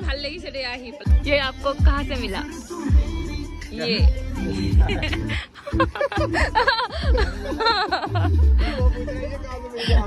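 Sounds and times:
people laughing: 4.6s - 10.0s.

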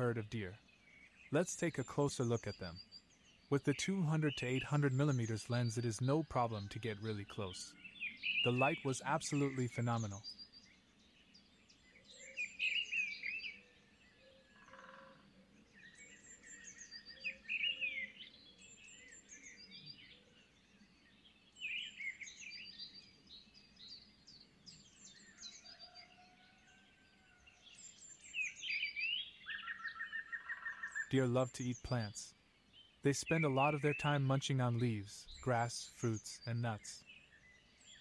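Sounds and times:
songbirds chirping and trilling: 0.0s - 38.0s
faint hushed background: 31.1s - 32.4s, 33.0s - 37.0s.

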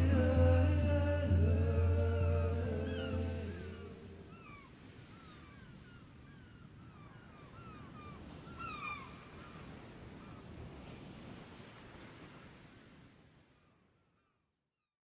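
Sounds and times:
music: 0.0s - 3.8s
bird chirping: 0.0s - 4.6s.

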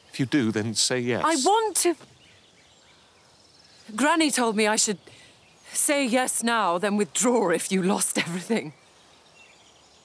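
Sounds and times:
soft outdoor hiss: 0.0s - 10.0s.

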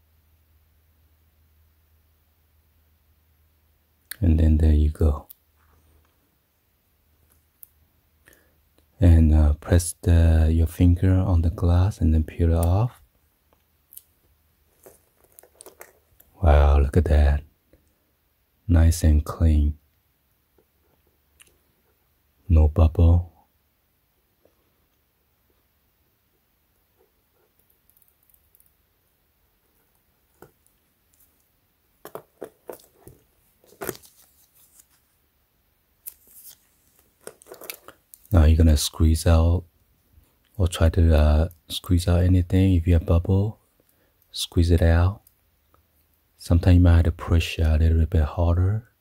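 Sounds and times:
soft clicks and rustles of handling: 5.2s - 6.3s, 7.2s - 8.9s, 12.6s - 16.4s, 26.3s - 28.8s, 29.6s - 35.2s, 36.0s - 38.4s.

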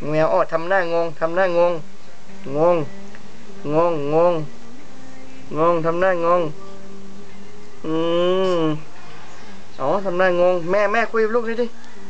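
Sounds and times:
person crooning nasal syllables: 7.8s - 8.9s.

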